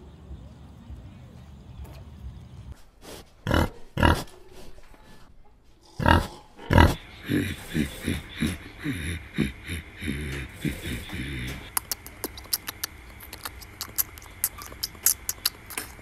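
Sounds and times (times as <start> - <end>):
piglet calling: 6.0 - 16.0.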